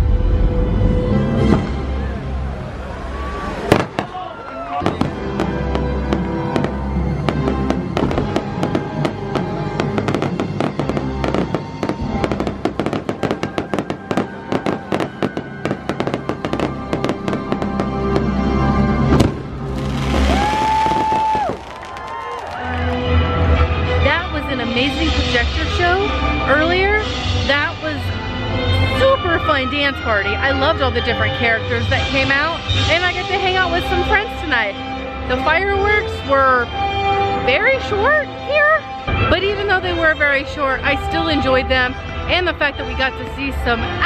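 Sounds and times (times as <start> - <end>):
fireworks crackling bangs: 3.6 - 4.2, 4.8 - 22.8
loud show music: 4.8 - 29.2.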